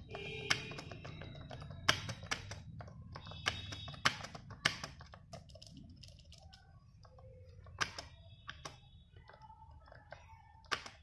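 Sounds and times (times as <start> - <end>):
keyboard key clicks: 0.0 - 11.0.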